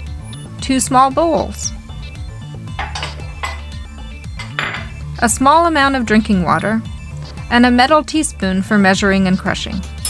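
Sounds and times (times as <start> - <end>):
soft background music: 0.0 - 10.0
ceramic bowl knocking on stone: 2.7 - 5.0
bowl scraping: 2.8 - 5.1.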